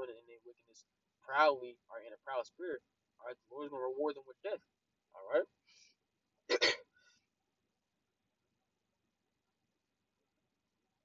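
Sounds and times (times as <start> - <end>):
man's throat sound: 6.5 - 6.8.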